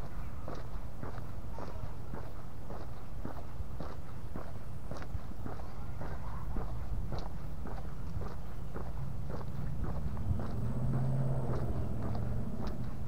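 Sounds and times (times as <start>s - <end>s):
footsteps on concrete: 0.0s - 13.0s
steady low rumble: 0.0s - 13.0s.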